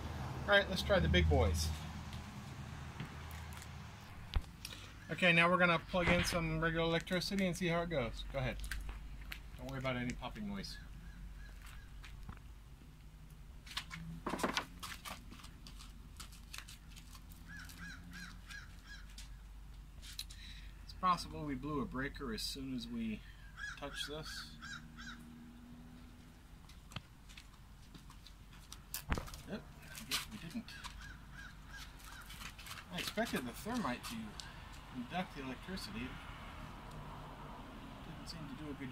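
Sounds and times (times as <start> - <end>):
electrical crackling pops: 28.9 - 30.4.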